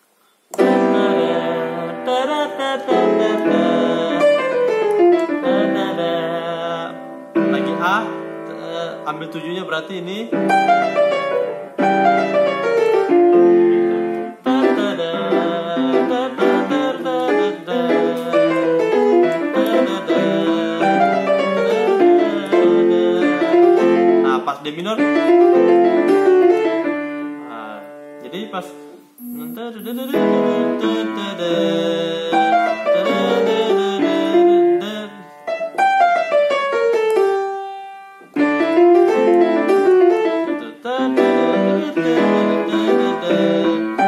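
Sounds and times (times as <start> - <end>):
jazz gospel piano playing: 0.6 - 44.0.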